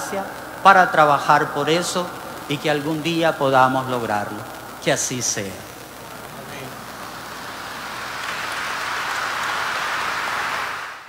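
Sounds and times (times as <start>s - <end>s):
congregation applauding: 6.0s - 11.0s.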